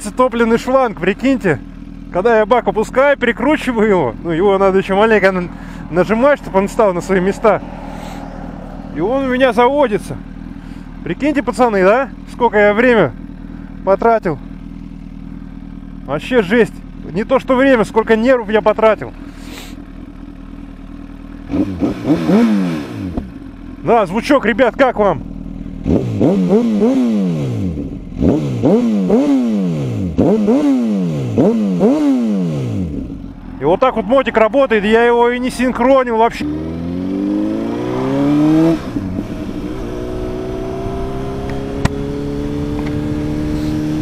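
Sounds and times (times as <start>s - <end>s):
motorcycle engine idling: 0.0s - 22.1s, 22.8s - 44.0s.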